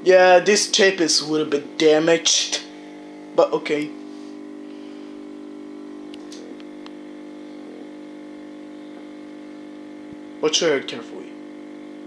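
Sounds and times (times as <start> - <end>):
television electrical buzz: 0.0 - 12.0.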